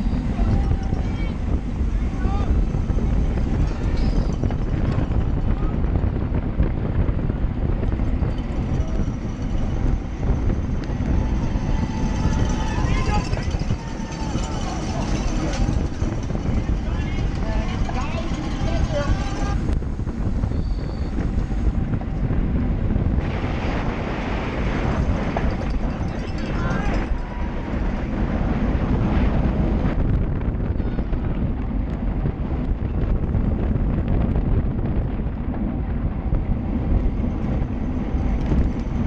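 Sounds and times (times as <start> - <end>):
wind noise on microphone: 0.0 - 39.0
faint crowd sounds: 10.8 - 19.7.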